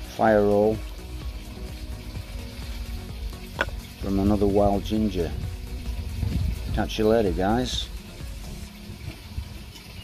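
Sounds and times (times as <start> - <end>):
dry grass fire crackling: 0.0 - 10.0.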